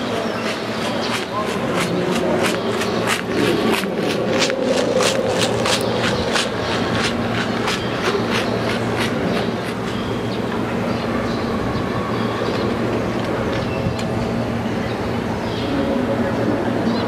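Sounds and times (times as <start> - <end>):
stadium background hum: 0.0 - 17.0.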